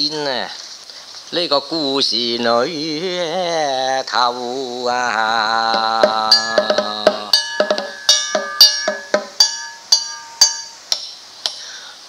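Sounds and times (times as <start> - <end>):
small gong and drum beat: 5.7 - 10.8.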